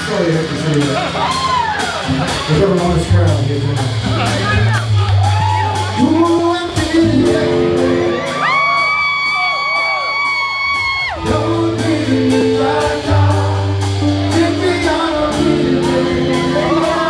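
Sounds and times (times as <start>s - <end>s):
crowd whooping: 0.0s - 2.7s, 4.1s - 6.6s, 7.2s - 11.6s
reggae band playing: 0.0s - 17.0s.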